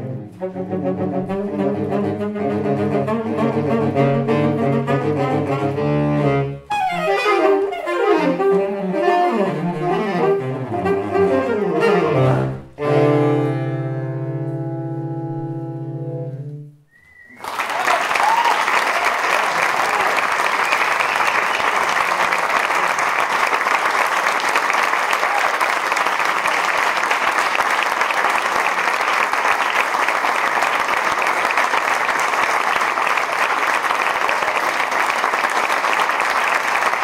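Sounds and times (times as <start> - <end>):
audience applauding: 17.0 - 37.0.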